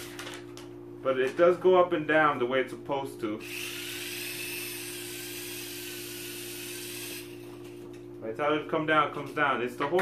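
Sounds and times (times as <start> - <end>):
toy helicopter whirring: 3.4 - 7.8.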